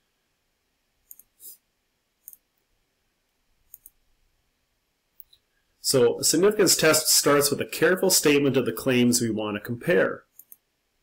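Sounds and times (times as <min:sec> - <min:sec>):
computer mouse clicks: 0:01.0 - 0:01.6, 0:02.2 - 0:02.6, 0:03.7 - 0:04.0, 0:10.3 - 0:10.6.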